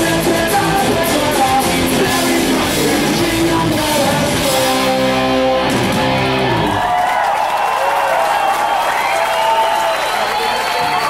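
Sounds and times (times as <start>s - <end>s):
crowd applauding and cheering: 4.9s - 11.0s.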